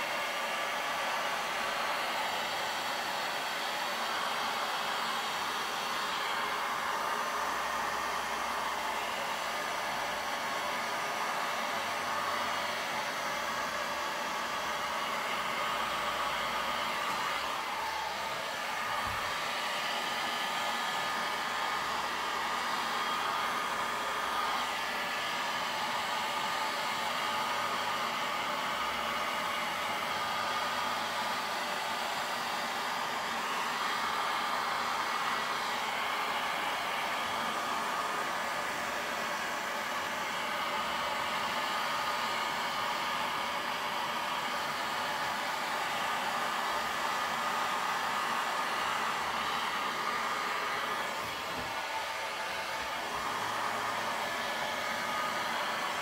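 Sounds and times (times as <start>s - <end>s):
heat gun blowing: 0.0s - 56.0s.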